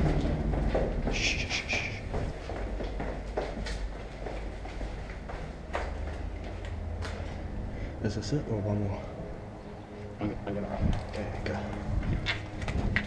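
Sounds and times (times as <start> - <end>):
footsteps going down stairs: 0.0 - 7.6, 10.8 - 13.0
steady low rumble: 0.0 - 13.0.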